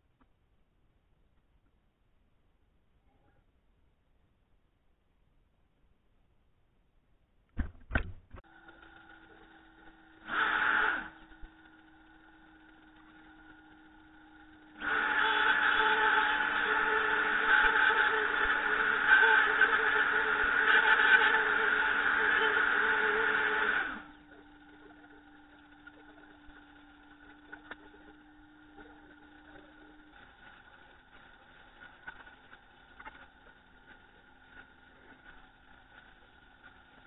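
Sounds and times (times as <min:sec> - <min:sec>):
router whining while cutting: 0:08.5 - 0:36.8.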